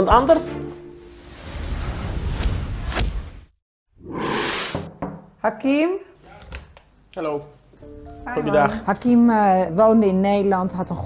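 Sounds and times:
whoosh: 1.2s - 4.9s.

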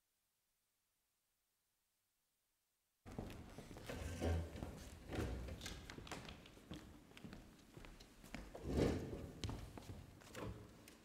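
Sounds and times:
footsteps on stage floor: 3.1s - 8.6s, 9.2s - 11.0s.

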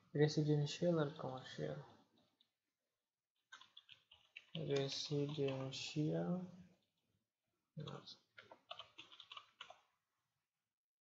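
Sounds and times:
person speaking: 0.0s - 2.1s, 4.4s - 6.8s, 7.8s - 8.4s.

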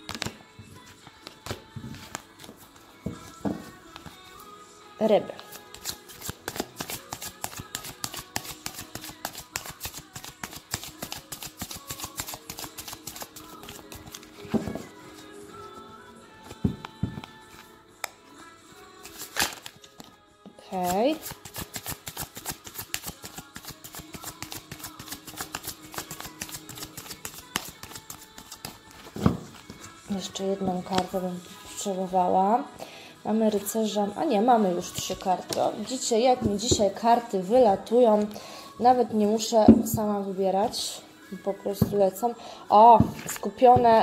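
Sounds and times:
cards being shuffled: 0.0s - 0.4s, 5.4s - 14.9s, 19.0s - 20.2s, 20.8s - 30.0s, 43.0s - 43.9s
background music: 0.0s - 44.0s.

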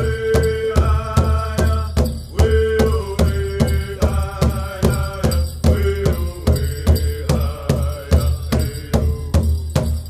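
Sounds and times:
voices singing a chant: 0.0s - 9.7s
large drum steady beat: 0.0s - 10.0s.

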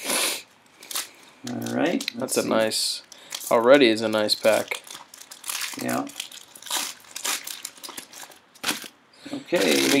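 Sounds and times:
foil card pack crinkling and tearing: 0.8s - 9.0s, 9.6s - 10.0s
wrapper peeled off cards: 9.6s - 10.0s.

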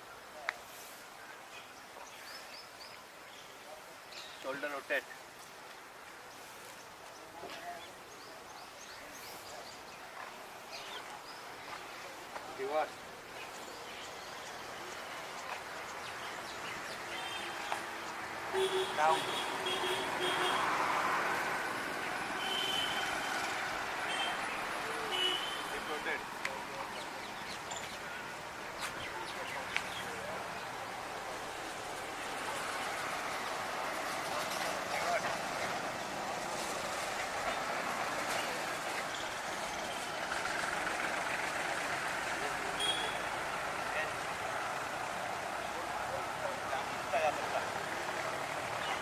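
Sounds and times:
outdoor background noise: 0.0s - 49.0s
road traffic: 0.0s - 49.0s.

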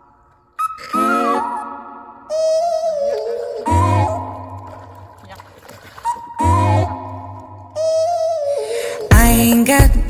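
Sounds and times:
pop music with sustained vocals: 9.1s - 10.0s.

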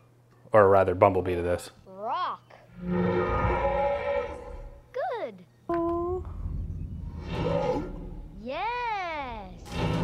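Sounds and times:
low hum: 2.7s - 4.9s, 5.7s - 10.0s.

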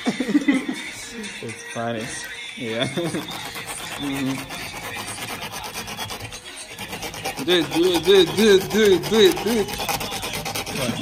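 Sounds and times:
metal tool scraping fabric: 2.8s - 11.0s.

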